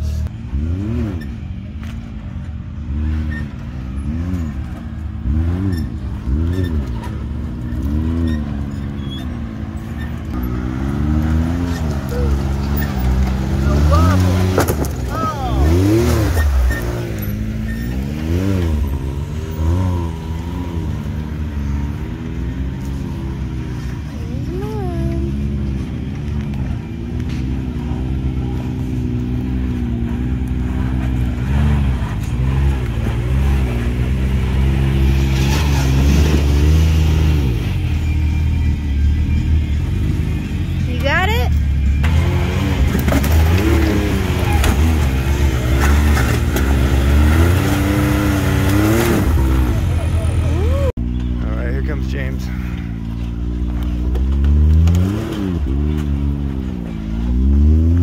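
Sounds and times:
off-road engines revving: 0:00.0 - 0:58.0.

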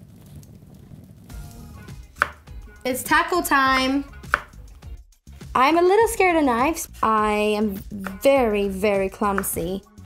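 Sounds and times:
knife striking wooden cutting board: 0:02.2 - 0:02.4, 0:04.2 - 0:04.6, 0:09.3 - 0:09.7.

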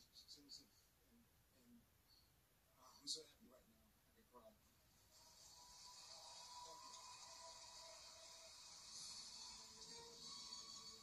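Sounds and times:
faint steady tones: 0:00.0 - 0:11.0
audience applause on television: 0:05.4 - 0:09.7.

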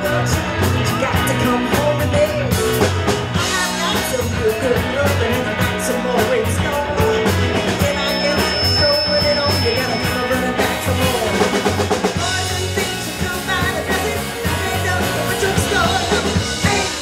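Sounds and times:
drum kit beat: 0:00.0 - 0:17.0
live rock band playing: 0:00.0 - 0:17.0.

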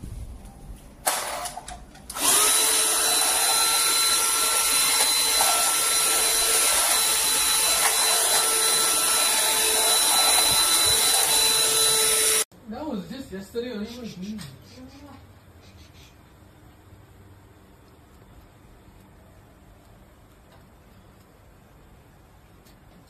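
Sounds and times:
vacuum cleaner motor whining: 0:02.1 - 0:12.5.

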